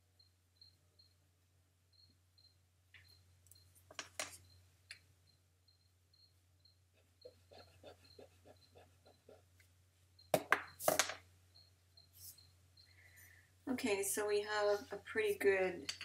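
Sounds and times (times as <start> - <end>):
pencil strokes on paper: 7.2 - 9.5.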